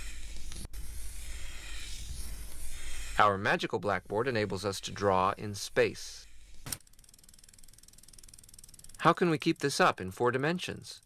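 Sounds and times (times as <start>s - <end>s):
rapid mechanical ticking: 0.0s - 11.0s.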